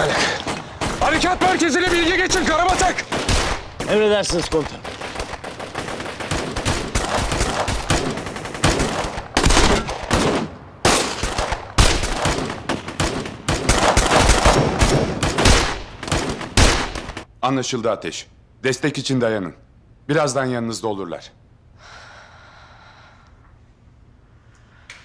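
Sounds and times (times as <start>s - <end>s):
gunfire single shots and bursts: 0.0s - 17.3s.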